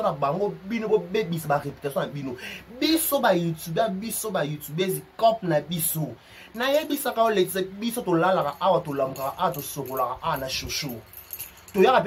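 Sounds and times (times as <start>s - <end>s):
man speaking: 0.0s - 11.1s, 11.7s - 12.0s
high rattle: 6.5s - 12.0s.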